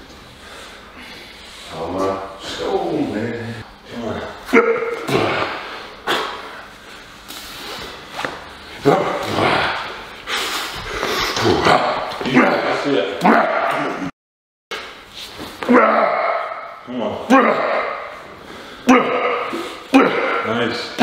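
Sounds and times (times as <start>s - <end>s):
man huffing and grunting: 3.9s - 6.6s, 8.8s - 10.0s, 11.0s - 14.1s, 17.2s - 21.0s.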